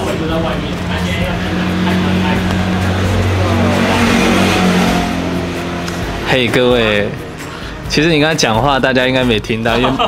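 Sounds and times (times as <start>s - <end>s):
vehicle engine running: 0.0s - 8.0s
background music: 0.0s - 10.0s.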